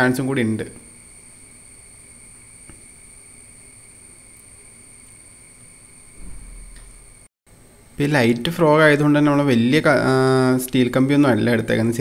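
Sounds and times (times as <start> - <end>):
faint high-pitched whine: 0.0 - 7.3
low rumble: 6.2 - 7.2.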